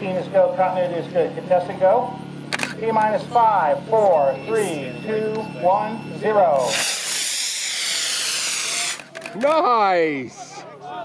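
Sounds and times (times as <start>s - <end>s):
model rocket motor hissing: 6.6s - 9.1s.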